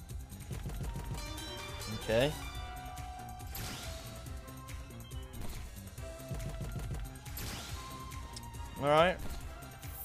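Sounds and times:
slot game background music: 0.0 - 10.0.

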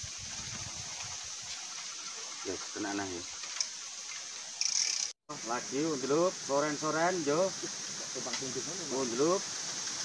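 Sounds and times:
running river water: 0.0 - 10.0
fishing reel clicking: 4.6 - 5.1.

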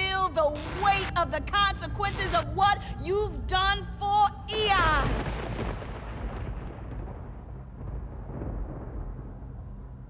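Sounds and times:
rain-like hiss: 4.9 - 10.0
rolling thunder: 5.0 - 10.0.

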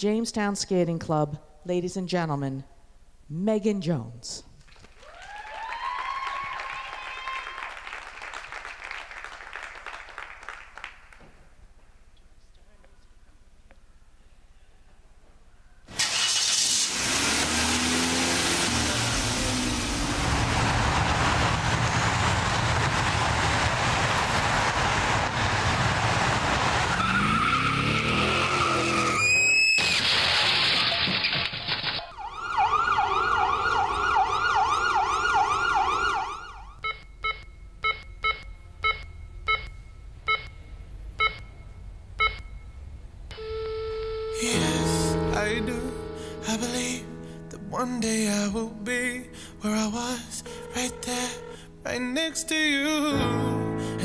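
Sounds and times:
car driving: 15.9 - 31.2, 32.1 - 47.6
car crash: 15.9 - 36.6
emergency siren wailing: 26.5 - 30.0, 32.0 - 36.8, 43.3 - 44.5, 50.4 - 51.6
tyre screech: 26.9 - 31.4
short electronic beeps: 36.8 - 44.5.

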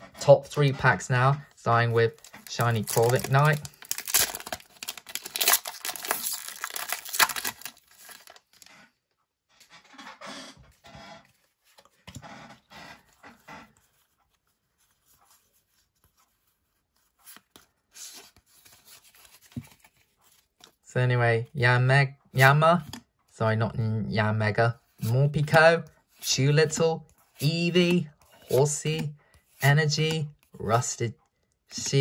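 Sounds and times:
wrapper rustling: 2.0 - 8.8
foil wrapper crinkling and tearing: 2.1 - 8.7.

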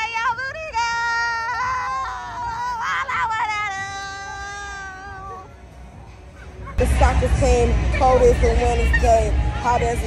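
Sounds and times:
loud music: 1.1 - 10.0.

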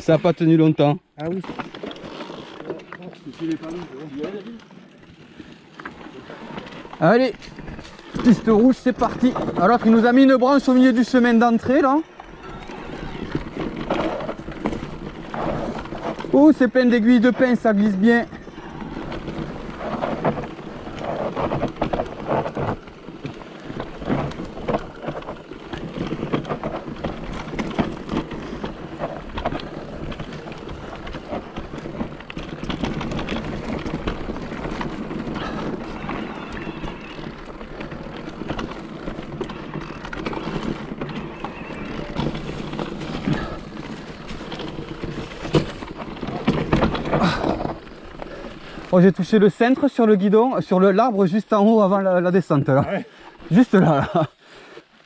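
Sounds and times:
bike rattling and knocking: 0.0 - 52.6
tyres running over dirt: 0.0 - 55.0.

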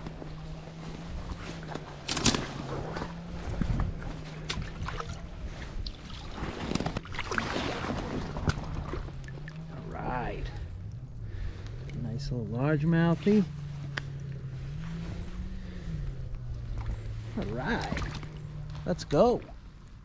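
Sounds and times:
water splashing and sloshing: 0.0 - 12.1, 13.0 - 20.0
low hum: 0.0 - 20.0.

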